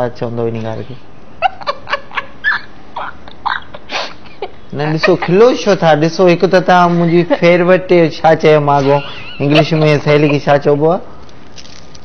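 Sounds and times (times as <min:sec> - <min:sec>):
woman laughing: 0:01.4 - 0:05.6, 0:08.8 - 0:10.5.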